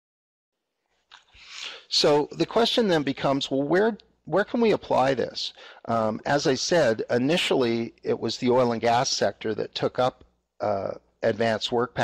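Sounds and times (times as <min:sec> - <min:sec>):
sharp in-breath: 0:01.3 - 0:01.9
man speaking: 0:01.5 - 0:12.0.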